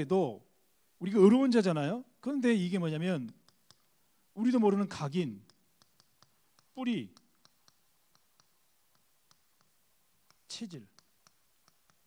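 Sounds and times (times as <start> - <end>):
chalk clicking on a chalkboard: 3.0 - 4.1, 5.2 - 12.0.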